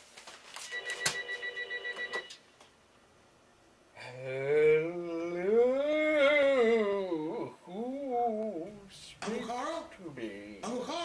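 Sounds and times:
telephone bell ringing: 0.7 - 2.4.

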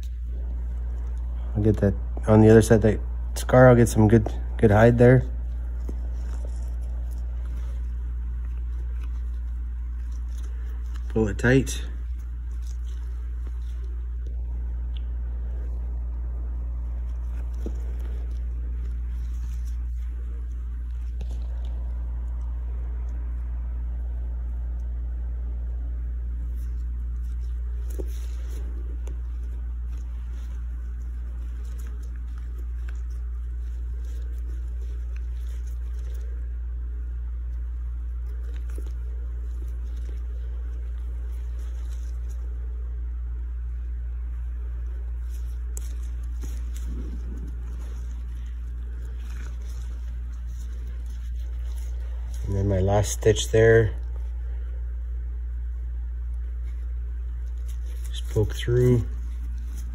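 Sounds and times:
steady low hum: 0.0 - 59.9
rustles and small clicks: 5.4 - 53.3, 54.0 - 59.9.

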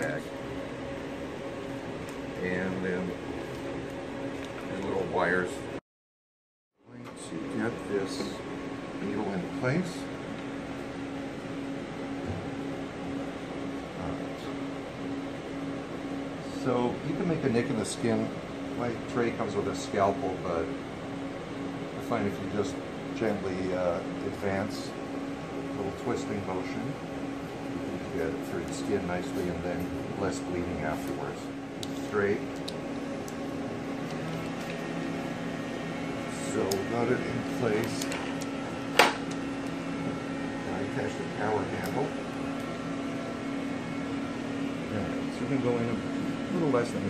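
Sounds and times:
machine and air-handling hum: 0.0 - 5.8, 6.8 - 47.0.

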